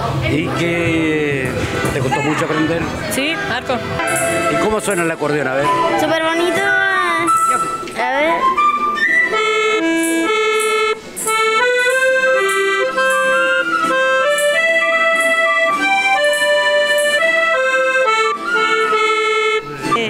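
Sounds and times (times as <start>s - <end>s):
accordion melody: 0.3s - 20.0s.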